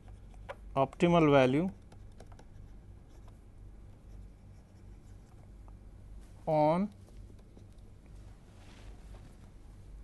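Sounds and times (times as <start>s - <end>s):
stylus scratching and tapping: 0.0s - 5.8s, 6.8s - 8.2s
steady low hum: 0.0s - 10.0s.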